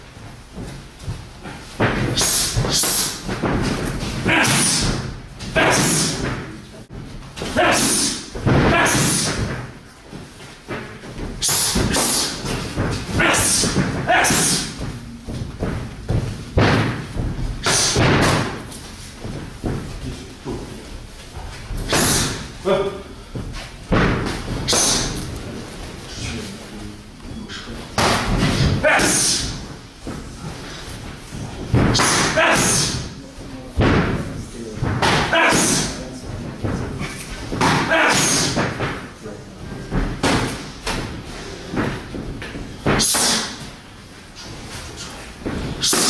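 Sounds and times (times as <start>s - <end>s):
punches hitting focus mitts: 7.4s - 9.7s, 10.7s - 19.9s, 21.7s - 22.6s, 37.4s - 39.1s
kicks thudding on kick pads: 10.7s - 20.1s.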